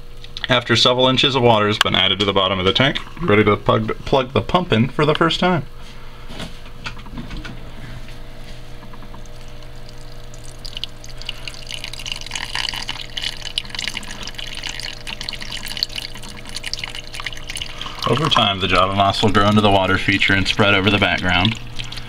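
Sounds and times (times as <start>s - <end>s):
small water pump humming: 0.0s - 22.0s
water trickling and splashing: 9.2s - 18.5s, 19.7s - 22.0s.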